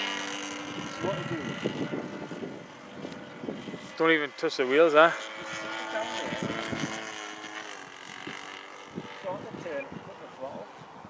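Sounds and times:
model plane engine drone: 0:00.0 - 0:11.0.

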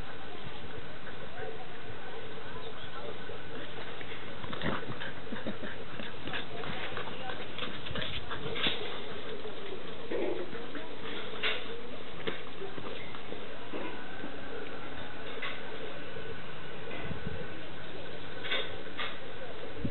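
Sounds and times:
dogs growling playfully: 0:04.0 - 0:11.7.

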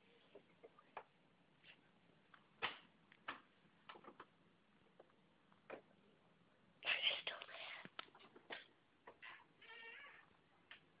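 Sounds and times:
person whispering: 0:06.8 - 0:08.0.

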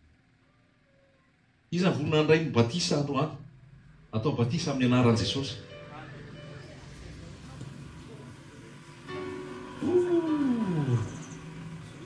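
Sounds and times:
tone sliding down in pitch: 0:09.6 - 0:11.5.

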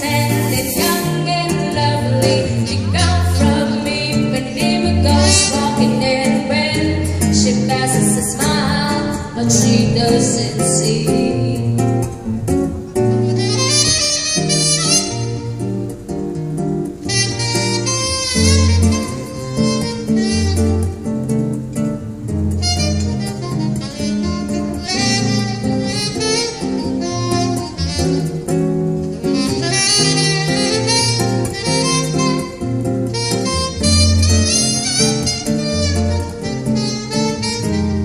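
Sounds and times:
nylon-string acoustic guitar: 0:00.0 - 0:38.0
saxophone melody: 0:00.0 - 0:38.0.

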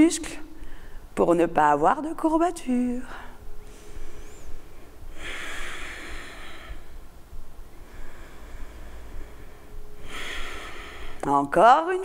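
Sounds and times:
woman breathing deeply: 0:00.6 - 0:01.2, 0:03.1 - 0:11.2.

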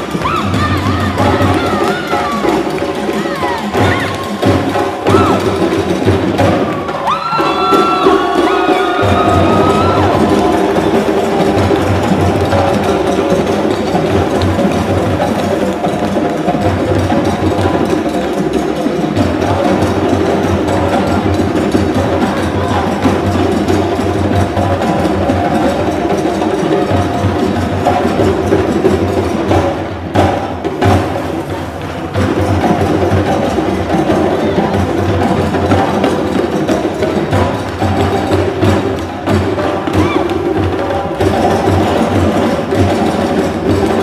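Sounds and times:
dense drum rhythm: 0:00.0 - 0:44.0.

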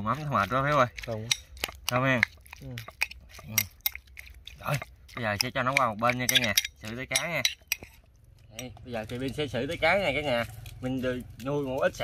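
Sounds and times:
metal spoon clinking on bowl: 0:00.4 - 0:10.7.

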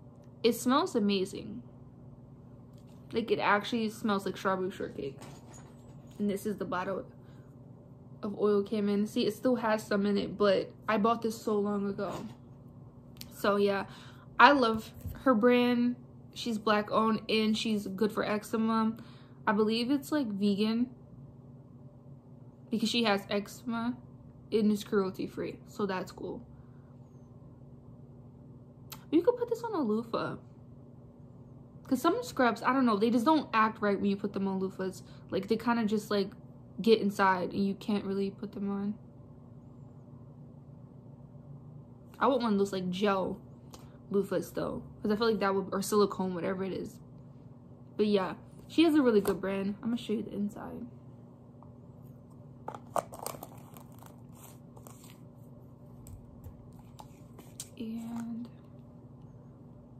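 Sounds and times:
steady low hum: 0:00.0 - 0:59.9
jar lid clicks and crinkles: 0:52.7 - 0:54.2.

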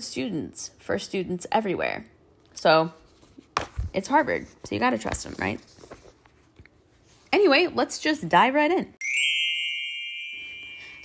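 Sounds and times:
bright bell-like chime: 0:09.0 - 0:11.0.

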